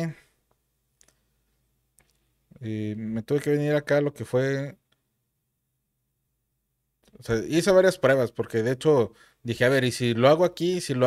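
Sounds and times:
faint computer mouse clicks: 0.5s - 1.2s.

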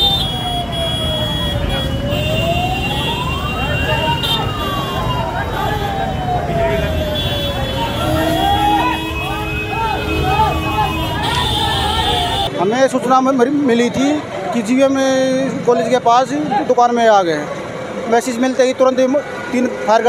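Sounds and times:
fire engine siren wailing: 0.0s - 12.5s
bystanders talking: 0.0s - 20.0s
street traffic rumble: 0.0s - 20.0s.

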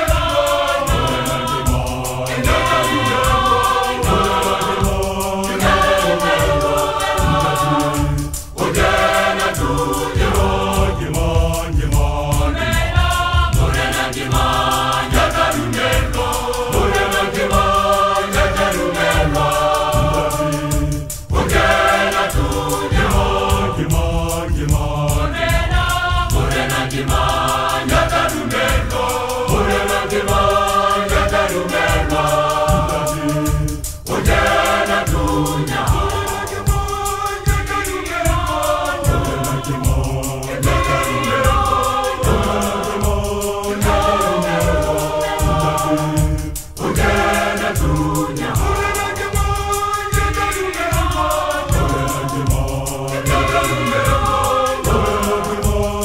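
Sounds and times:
choir singing gospel: 0.0s - 56.0s.

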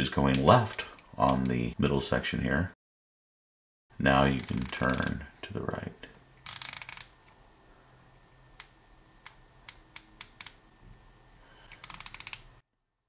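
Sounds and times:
screwdriver ratchet clicking: 4.4s - 5.2s, 6.4s - 7.1s, 8.6s - 10.6s, 11.7s - 12.5s.

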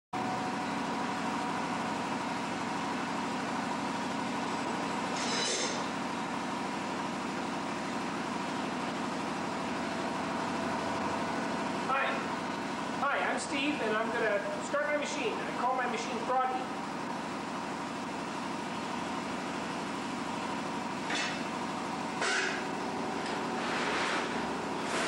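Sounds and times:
steady background hum: 0.2s - 25.0s.

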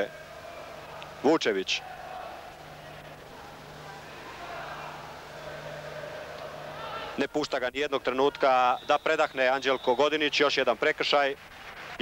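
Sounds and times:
constant low hum: 0.0s - 12.0s
stadium crowd murmur: 0.0s - 12.0s.

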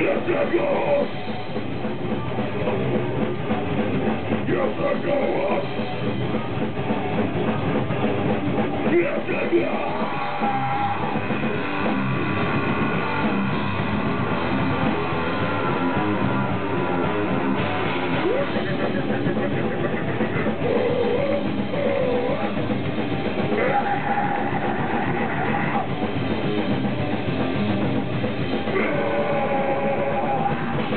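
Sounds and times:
vocalist singing: 0.0s - 1.2s, 4.4s - 5.9s, 8.8s - 11.3s, 23.4s - 26.0s, 28.6s - 30.9s
distorted electric guitar: 0.0s - 30.9s
drum kit: 0.0s - 30.9s.

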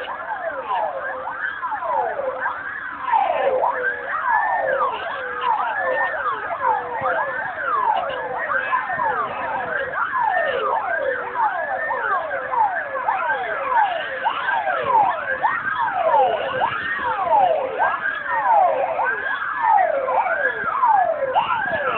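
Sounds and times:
fire engine sirens wailing: 0.0s - 21.9s.

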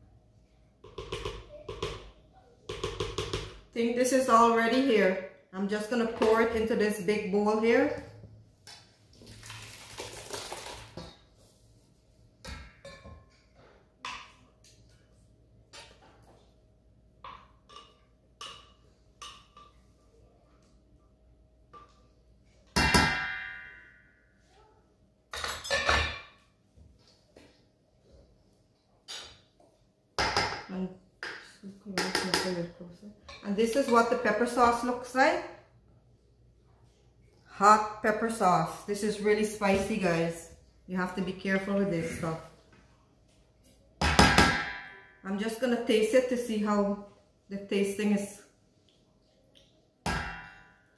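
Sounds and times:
sauce pouring into bowl: 9.2s - 11.0s.

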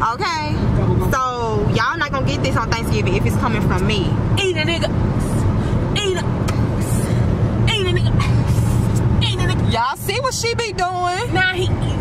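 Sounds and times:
car cabin road and engine drone: 0.0s - 12.0s.

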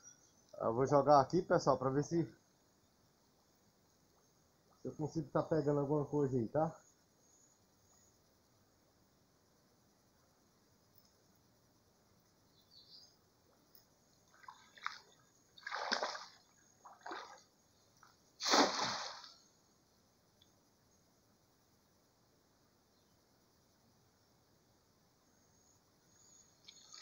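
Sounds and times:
net splashing into water: 14.3s - 17.5s, 18.4s - 19.4s.

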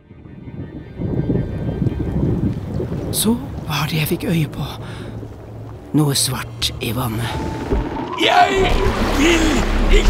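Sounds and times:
wind: 0.0s - 10.0s
heavy waves churning: 1.5s - 10.0s.

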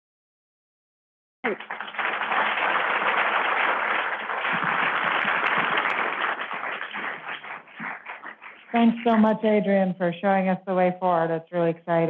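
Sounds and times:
audience applauding: 1.4s - 9.2s.

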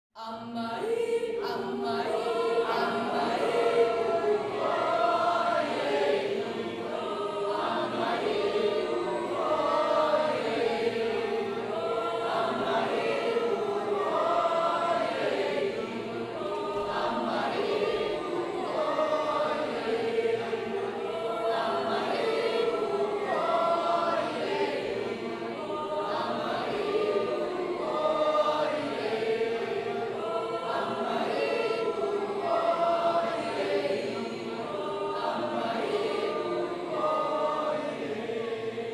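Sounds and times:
audience singing in a round: 0.2s - 38.9s.

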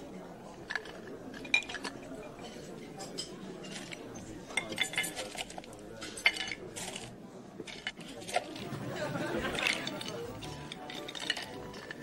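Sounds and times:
murmur of diners chatting: 0.0s - 12.0s
cutlery and china clinking: 0.4s - 12.0s.

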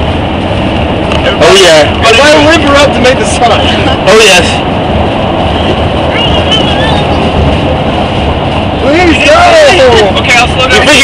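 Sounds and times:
road and wind noise inside vehicle: 0.0s - 11.0s.

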